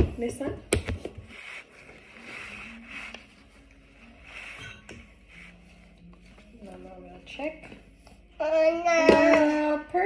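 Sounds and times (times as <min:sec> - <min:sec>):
paper towel rubbing countertop: 0:01.1 - 0:06.9.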